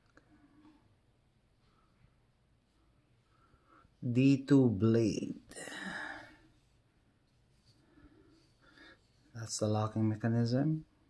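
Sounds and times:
faint soft sounds: 0.0s - 11.0s.

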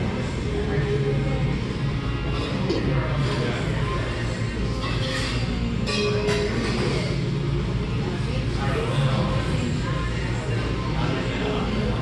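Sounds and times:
diners chatter: 0.0s - 12.0s.

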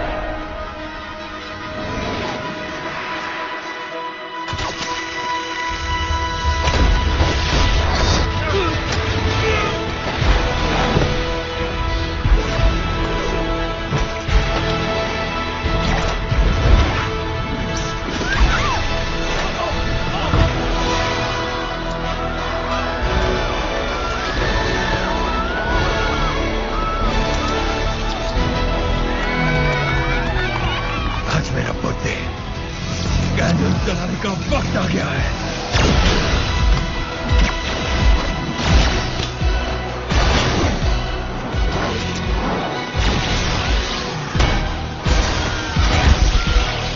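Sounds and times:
film score music: 0.0s - 46.9s.

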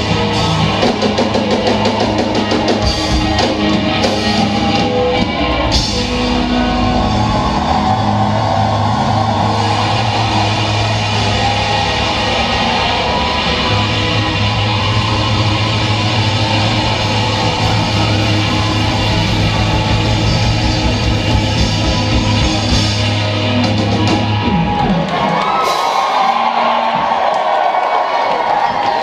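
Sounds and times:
rock band playing: 0.0s - 29.0s.

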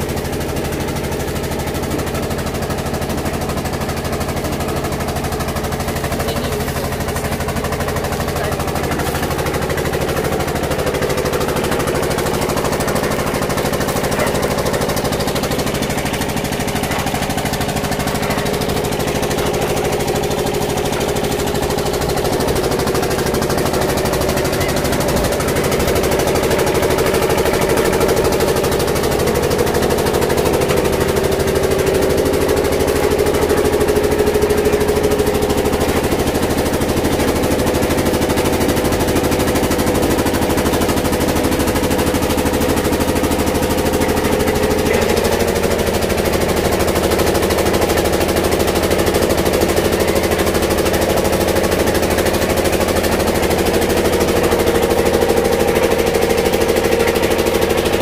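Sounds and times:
diesel engine running: 0.0s - 58.0s.

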